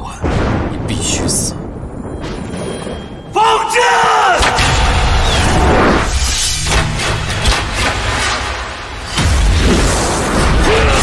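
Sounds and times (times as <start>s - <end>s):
sharp crack: 4.3s - 11.0s.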